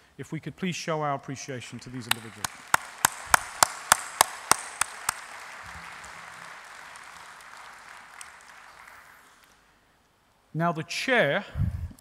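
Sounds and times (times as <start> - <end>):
close loud hand claps: 1.8 - 9.6
audience applause: 1.8 - 9.7.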